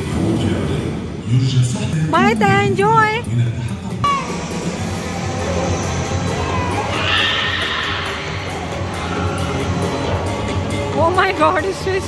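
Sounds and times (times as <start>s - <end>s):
park music: 2.0s - 12.0s.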